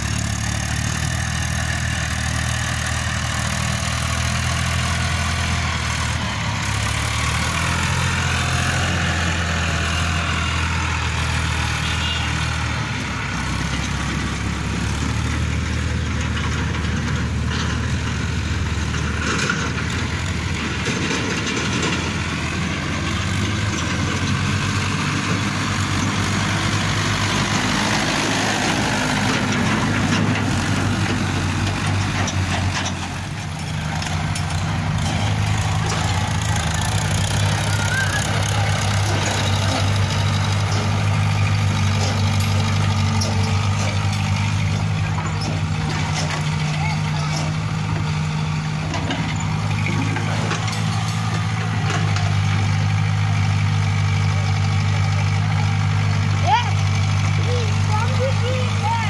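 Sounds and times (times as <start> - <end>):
excavator diesel engine drone: 0.0 - 59.0
tractor diesel engine running: 0.0 - 59.0.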